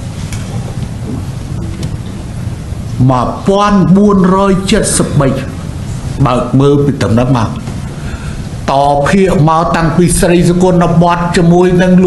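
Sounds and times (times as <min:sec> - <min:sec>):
rumbling background hiss: 0:00.0 - 0:12.0.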